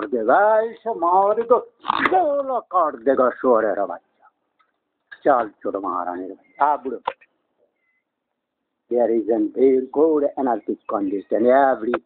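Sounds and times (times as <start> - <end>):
man speaking: 0.0 - 4.4, 5.1 - 7.3, 8.9 - 12.0.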